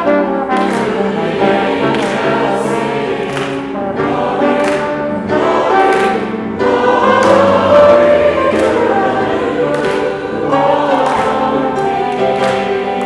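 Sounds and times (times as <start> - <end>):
trombone: 0.0 - 2.9
congregation singing a hymn: 0.0 - 13.0
piano: 0.0 - 13.0.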